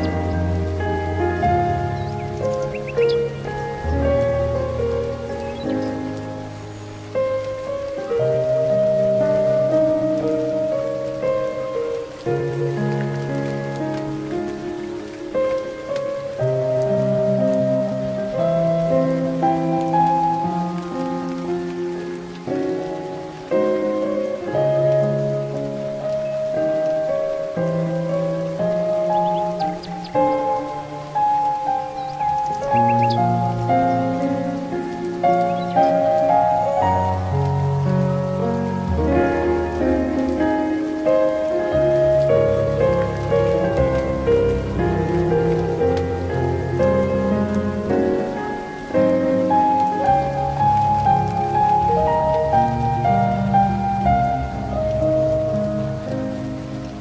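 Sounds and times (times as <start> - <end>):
slow solo piano music: 0.0 - 57.0.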